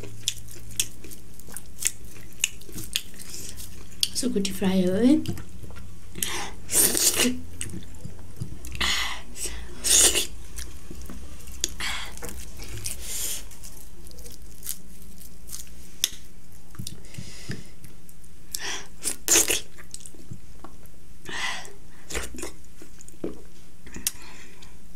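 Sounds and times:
person chewing food: 0.0s - 4.2s, 5.2s - 21.0s, 21.6s - 24.8s.

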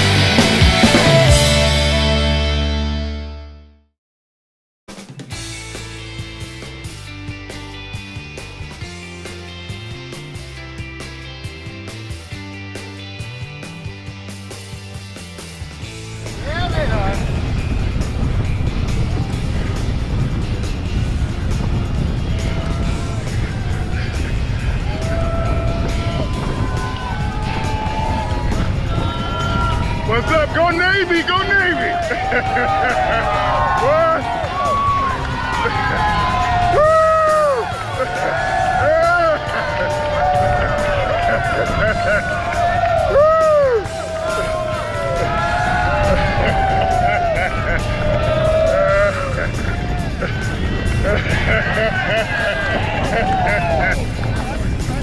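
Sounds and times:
music: 0.0s - 3.9s, 4.9s - 55.0s
wind rushing over microphone: 16.2s - 55.0s
spectators cheering and whooping: 22.1s - 55.0s.

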